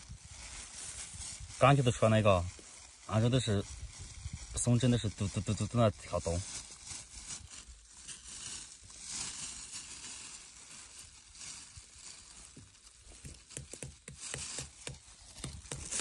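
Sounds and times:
pine needles rustling and crackling: 0.0 - 16.0.

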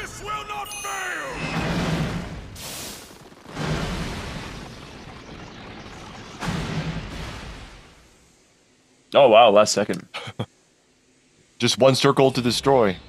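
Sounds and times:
cartoon crashing blasts: 1.2 - 8.2.

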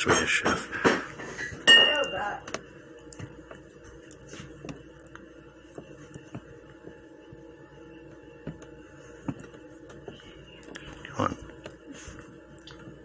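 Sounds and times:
steady low room hum: 0.0 - 13.0.

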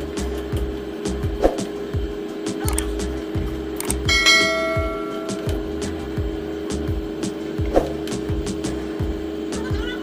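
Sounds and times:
background music with steady beat: 0.0 - 10.0
bright bell-like ding: 4.1 - 5.6.

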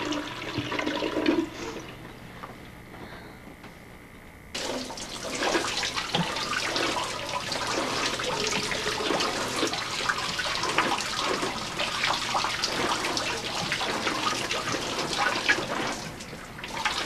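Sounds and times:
running splashing water: 4.6 - 17.0.

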